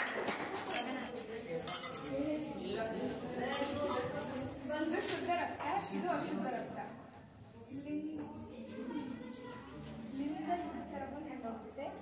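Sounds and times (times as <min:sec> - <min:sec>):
glass and steel vessels clinking: 0:01.7 - 0:02.1
people talking: 0:07.6 - 0:12.0.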